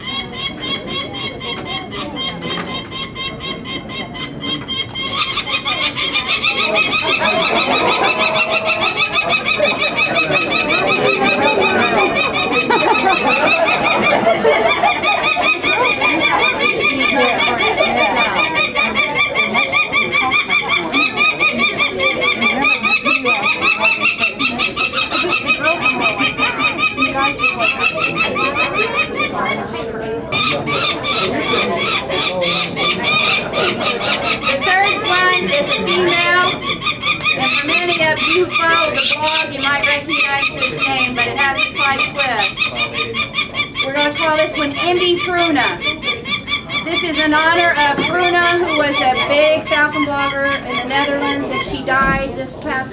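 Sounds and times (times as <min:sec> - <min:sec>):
falcon chicks harsh cries: 0:00.0 - 0:52.5.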